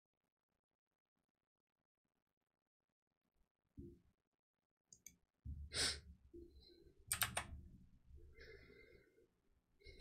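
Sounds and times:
sharp clicks: 7.1 - 7.6.

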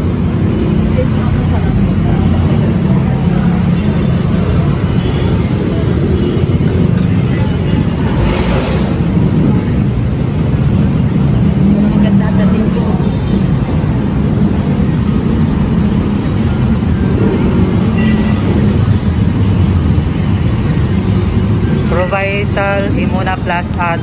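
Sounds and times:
faint voices of passers-by: 0.0 - 24.0
road traffic rumble: 0.0 - 24.0
vehicle engines idling: 0.0 - 24.0.

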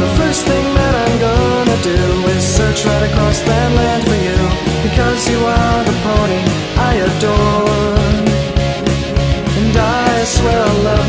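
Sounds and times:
person singing: 0.0 - 11.0
rock band playing: 0.0 - 11.0.

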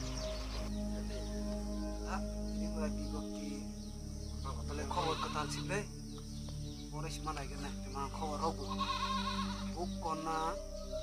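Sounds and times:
background music with low drone: 0.0 - 11.0.

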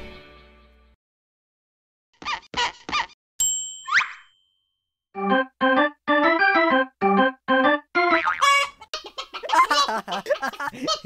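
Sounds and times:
keyboard tune: 5.2 - 8.7
high voice giggling: 9.4 - 11.0.

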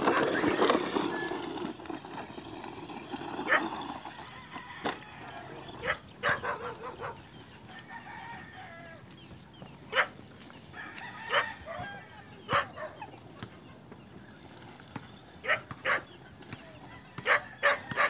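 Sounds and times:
toy truck electric motor: 0.0 - 6.0.

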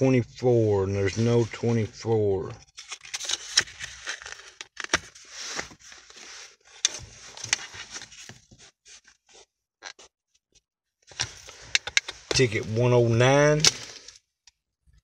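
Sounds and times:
paper tickets rustling: 11.4 - 14.1.

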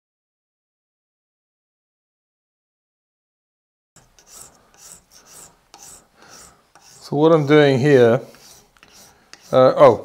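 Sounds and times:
rasp scraping horn: 4.1 - 10.0.

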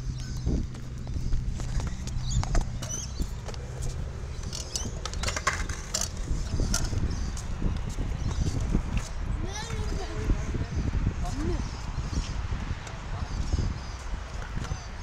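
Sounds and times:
wheels clicking and rattling: 0.0 - 10.2
wheels rolling over concrete: 0.5 - 10.4.

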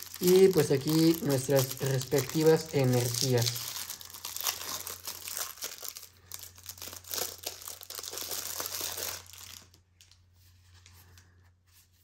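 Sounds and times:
plastic wrapping crinkling: 0.0 - 11.2.

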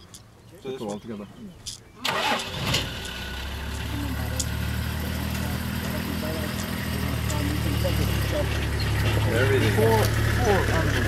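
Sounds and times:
vehicle engine idling: 2.0 - 11.0.

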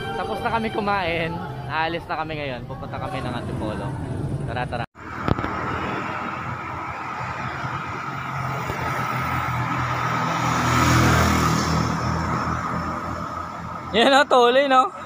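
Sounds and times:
motorcycles driving by: 2.6 - 15.0
car driving by: 5.0 - 14.0.

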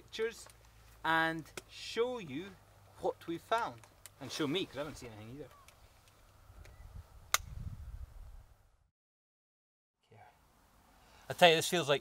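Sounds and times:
low wind rumble: 5.8 - 8.9.

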